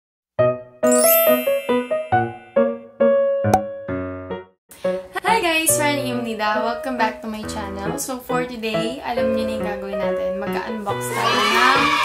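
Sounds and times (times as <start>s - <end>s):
bell-like keyboard melody: 0.8s - 2.9s
high glittering chime shimmer: 0.9s - 2.4s.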